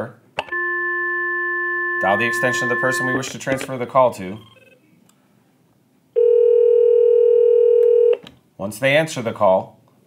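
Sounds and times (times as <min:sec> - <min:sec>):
phone ringback tone: 0:00.5 - 0:03.3, 0:04.4 - 0:04.8, 0:06.2 - 0:08.2.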